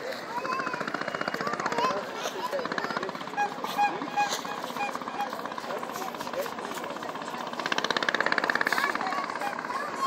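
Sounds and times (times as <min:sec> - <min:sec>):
people talking: 0:00.0 - 0:10.0
loud rapid buzzing rattle: 0:00.1 - 0:10.0.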